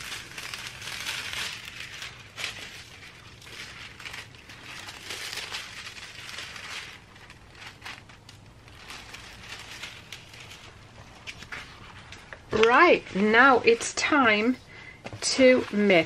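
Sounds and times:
metallic foil crinkling: 0.0 - 16.0.

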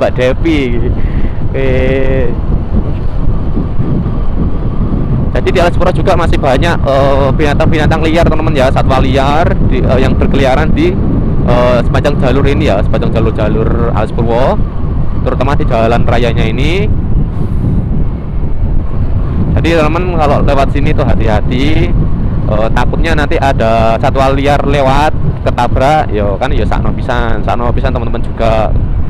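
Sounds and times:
road noise: 0.0 - 29.0
wind buffeting microphone: 0.0 - 29.0.

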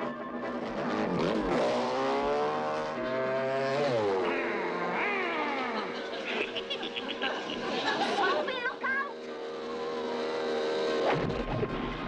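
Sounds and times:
music: 0.0 - 6.7
cartoon motor whining and revving: 0.5 - 12.0.

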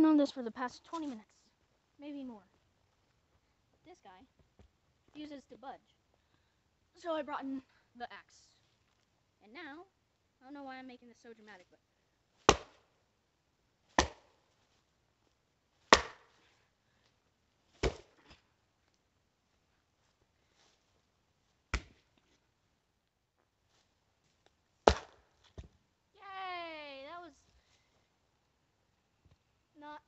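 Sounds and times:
axe chopping root: 12.5 - 12.8, 14.0 - 14.3, 15.9 - 16.4, 17.8 - 18.4, 21.7 - 22.0, 24.8 - 25.7.

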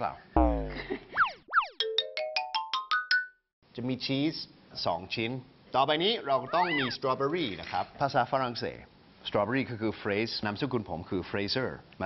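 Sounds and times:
bright plinking notes climbing: 0.4 - 1.0
cartoon falling pitch glide: 0.4 - 1.7
quick pitch sweeps: 0.4 - 1.7.

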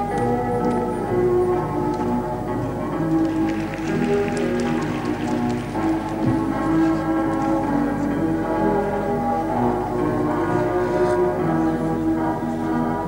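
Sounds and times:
music playing: 0.0 - 13.0.

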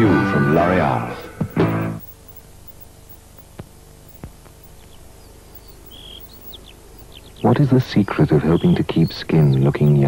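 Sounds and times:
recording hum and hiss: 0.0 - 10.0
faint bird chirps: 0.4 - 10.0
faint clicks: 0.6 - 7.2.

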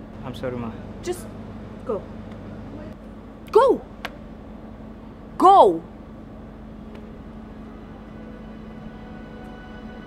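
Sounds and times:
sustained drone music: 6.6 - 10.0.

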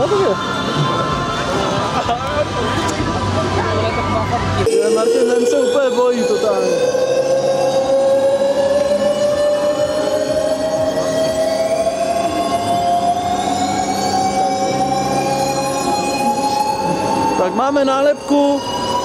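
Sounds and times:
high whine falling in pitch: 2.0 - 19.0
ride motor whining rising: 2.6 - 19.0.

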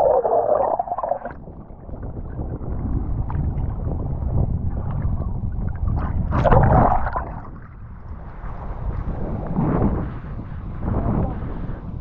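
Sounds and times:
water rushing and splashing: 0.0 - 1.4
wind noise on microphone: 0.0 - 12.0.

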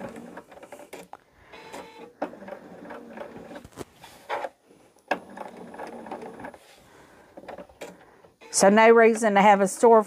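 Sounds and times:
sewing machine stitching: 0.0 - 4.5, 5.1 - 10.0.

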